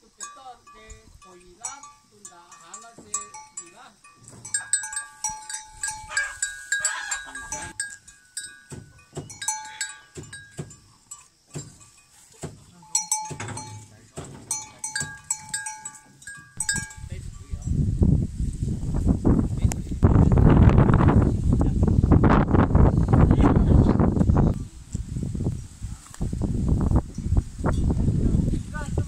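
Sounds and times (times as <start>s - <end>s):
cow bell clanking: 0.0s - 17.8s.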